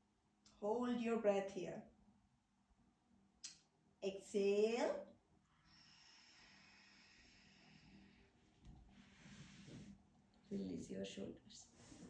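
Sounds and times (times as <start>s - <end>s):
long breath out: 5.6s - 9.9s.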